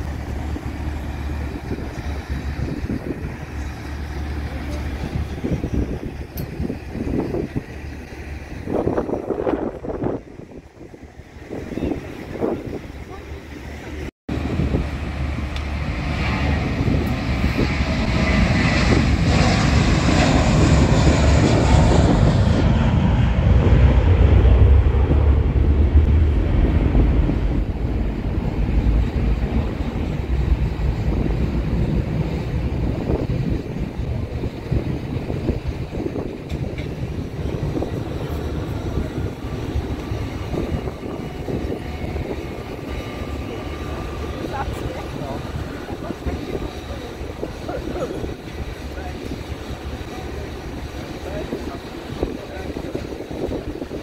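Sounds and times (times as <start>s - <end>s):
airliner taking off: 0.0s - 54.0s.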